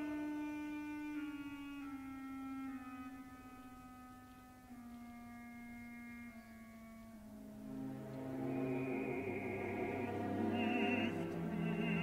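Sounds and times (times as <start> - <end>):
slow solo orchestral melody: 0.0 - 12.0.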